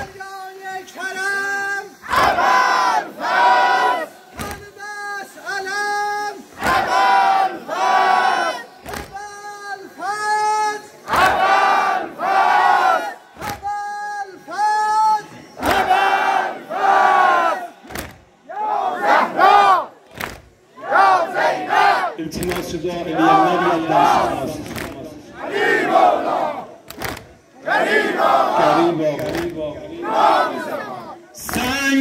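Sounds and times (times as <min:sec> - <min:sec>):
men chanting in unison: 0:02.0 - 0:04.8, 0:05.8 - 0:09.2, 0:21.0 - 0:26.8, 0:27.6 - 0:32.0
sharp smacks: 0:04.4 - 0:04.6, 0:17.9 - 0:18.2, 0:20.1 - 0:20.5, 0:26.9 - 0:27.4.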